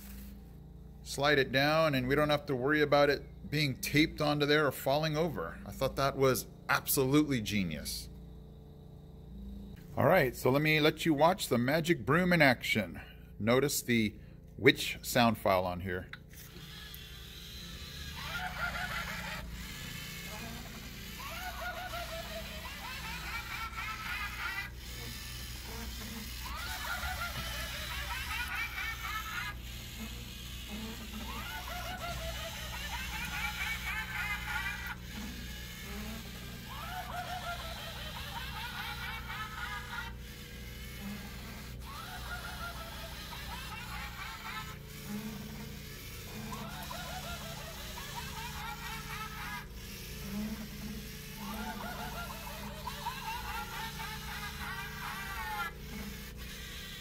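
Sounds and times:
cackling witch laugh: 18.2s - 29.6s, 30.7s - 40.4s, 41.0s - 45.7s, 46.3s - 49.9s, 50.5s - 56.2s.

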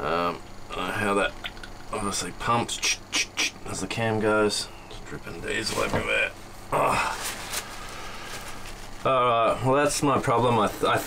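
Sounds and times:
paper towel rustling and crinkling: 7.1s - 9.1s.

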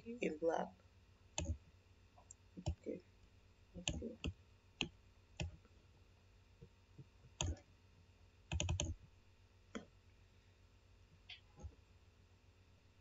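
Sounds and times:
computer mouse clicking: 1.4s - 1.6s, 7.3s - 7.6s, 8.5s - 9.0s.

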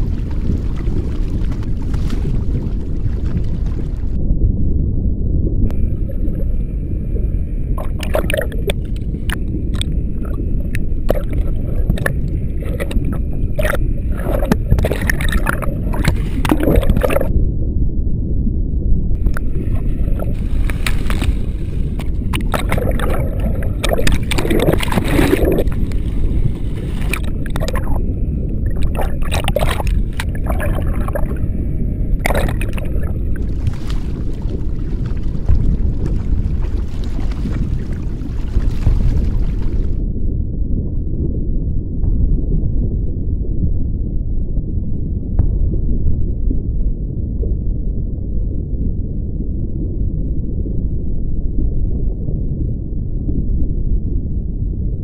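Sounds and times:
water sloshing and splashing: 0.0s - 4.2s, 5.7s - 17.3s, 19.2s - 40.0s
steady low rumble: 0.0s - 55.0s.

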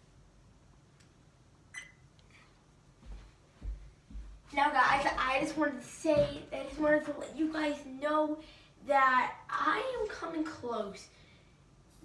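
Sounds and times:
camera beep: 1.7s - 2.0s
faint electronic blip: 1.7s - 2.0s.

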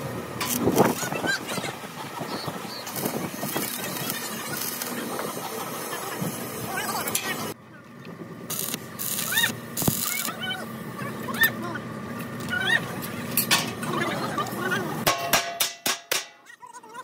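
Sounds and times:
voices: 0.8s - 15.1s
arc welding crackle: 2.8s - 7.6s, 8.5s - 10.5s.

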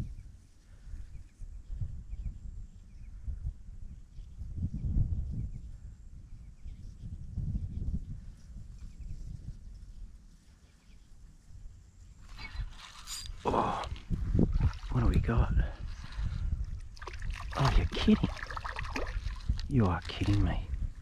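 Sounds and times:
wind rumble on microphone: 0.0s - 21.0s
fish splashing in water: 16.9s - 19.6s.

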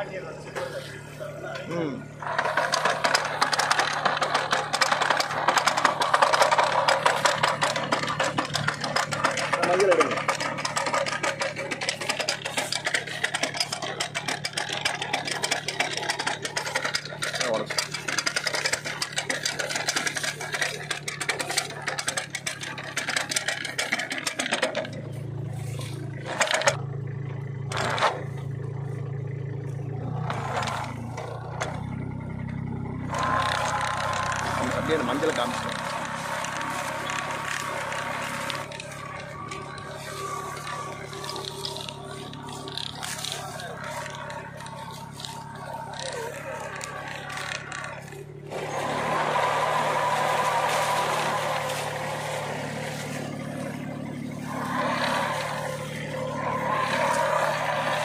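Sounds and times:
tractor engine clattering: 0.0s - 58.0s.

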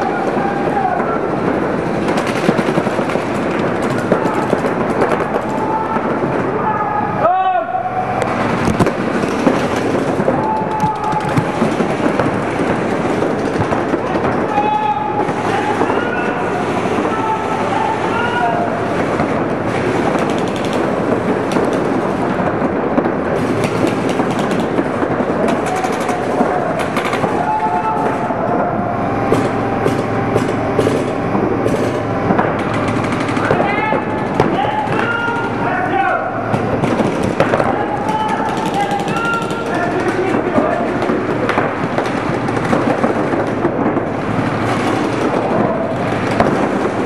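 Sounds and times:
voices shouting: 0.0s - 1.5s, 3.6s - 8.6s, 9.4s - 19.4s, 25.2s - 41.5s
paintball markers firing: 2.0s - 6.0s, 8.3s - 16.3s, 19.1s - 22.4s, 23.4s - 28.0s, 29.3s - 35.9s, 36.5s - 47.0s.

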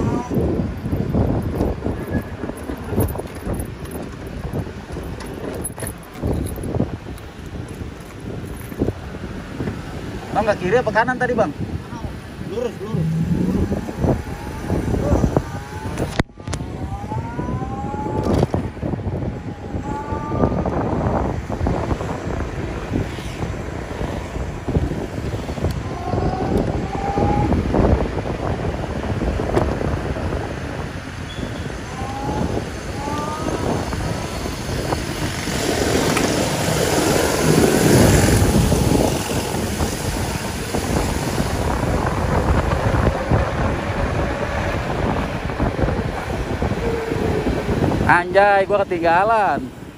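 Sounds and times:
road noise: 0.0s - 49.9s
wind buffeting microphone: 0.0s - 49.9s
short rising whines: 12.9s - 15.1s.

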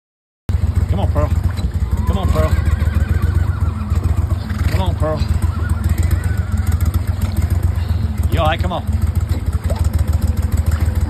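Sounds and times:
outboard motor running: 0.5s - 11.0s.

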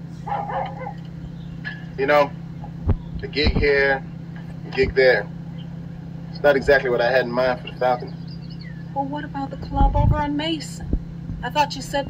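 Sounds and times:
steady low hum: 0.0s - 12.0s
dog barking: 0.2s - 1.1s.

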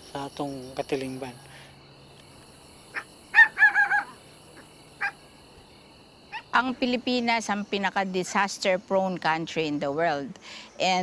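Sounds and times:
high drone of insects: 0.0s - 11.0s
chicken calling: 2.9s - 5.2s.

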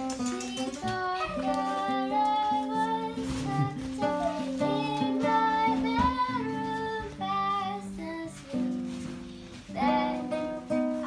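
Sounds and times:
girl singing: 0.0s - 11.0s
strummed acoustic guitar: 0.0s - 11.0s.

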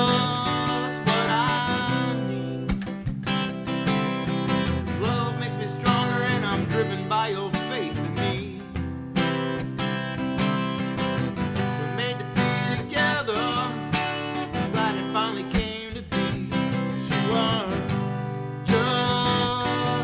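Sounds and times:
man singing: 0.0s - 2.9s, 4.0s - 8.8s, 11.4s - 20.0s
acoustic guitar strumming: 0.0s - 20.0s.

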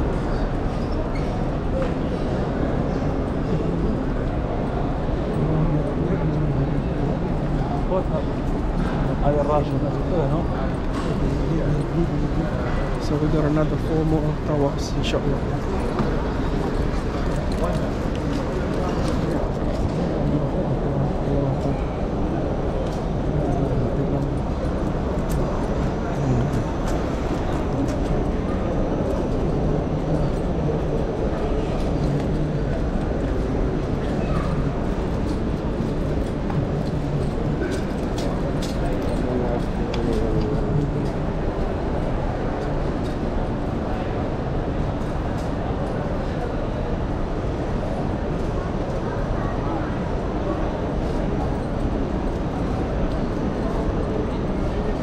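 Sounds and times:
crowd murmur: 0.0s - 55.0s.

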